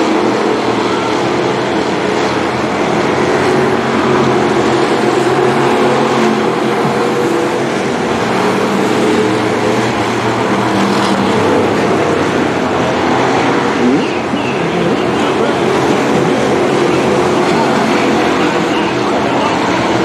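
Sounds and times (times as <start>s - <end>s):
stock car engines droning: 0.0s - 20.0s.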